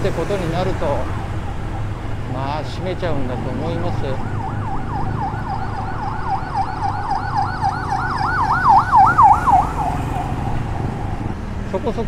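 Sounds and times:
road noise rumble: 0.0 - 12.0
emergency siren yelping: 2.7 - 11.3.

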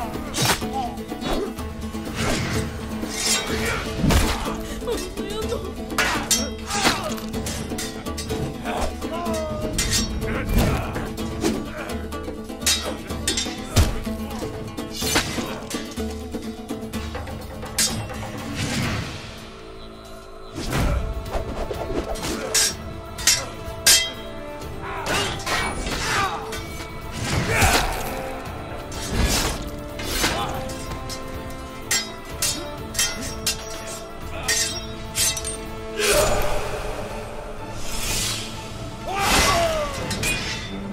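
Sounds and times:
background music with held notes: 0.0 - 40.9
dramatic film score: 0.0 - 40.9
sword blades clashing: 3.0 - 4.5, 6.0 - 10.5, 12.6 - 14.0, 17.7 - 18.1, 22.2 - 24.3, 25.0 - 28.2, 28.9 - 36.3, 39.2 - 40.9.

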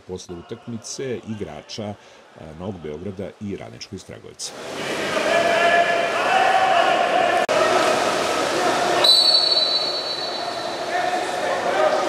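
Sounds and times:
echoing pool hall noise: 0.0 - 12.0
referee's whistle blast: 9.0 - 10.9.

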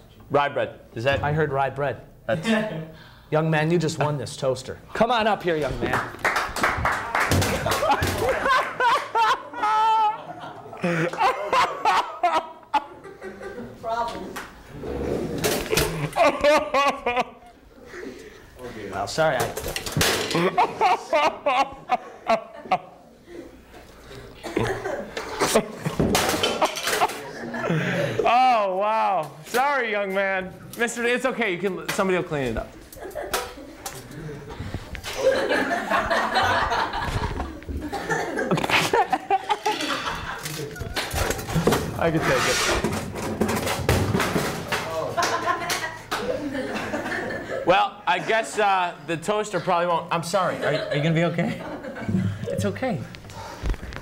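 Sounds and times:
people laughing: 6.8 - 13.9, 15.5 - 18.4, 20.2 - 28.8, 32.9 - 41.9, 44.8 - 48.6, 49.5 - 52.5
people talking: 41.9 - 42.8.

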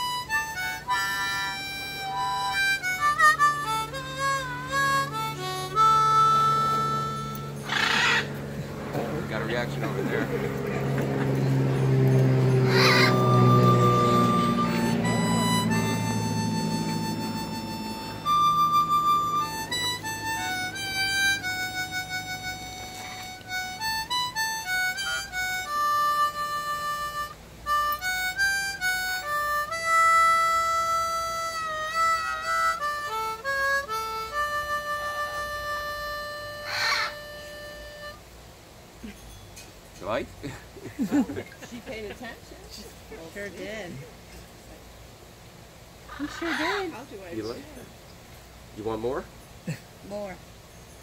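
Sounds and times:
harmonica melody: 0.0 - 38.6, 48.8 - 49.3.

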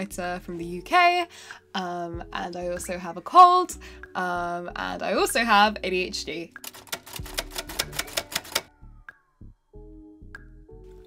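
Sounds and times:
typewriter keystroke clicks: 6.6 - 8.7.

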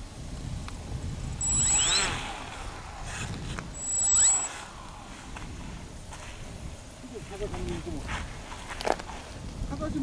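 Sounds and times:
model plane motor revving: 1.4 - 4.7.

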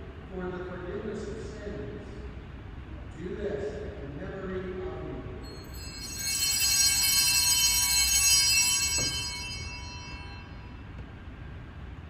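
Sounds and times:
small altar bells ringing: 5.4 - 11.4.

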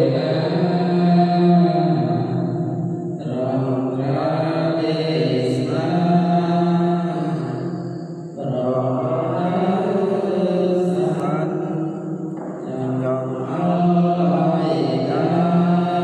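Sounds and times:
monks chanting: 0.0 - 16.0.

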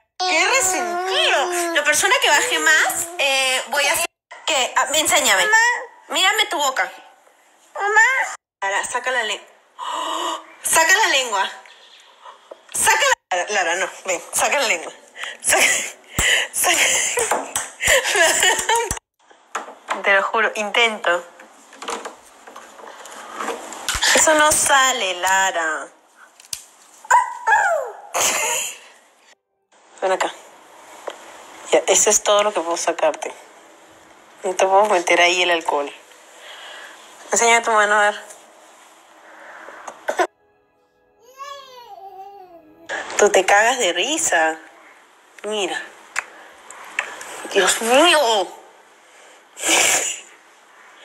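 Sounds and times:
toddler crying out: 0.2 - 2.0, 41.2 - 42.9
short sneeze: 49.6 - 50.3.

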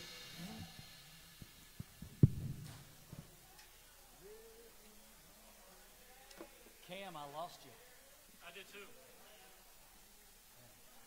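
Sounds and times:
faint distant speech: 3.0 - 11.0.

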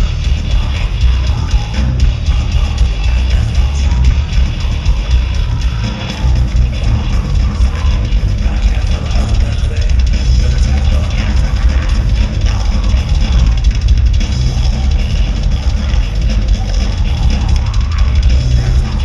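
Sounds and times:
live heavy metal band: 0.0 - 19.0.

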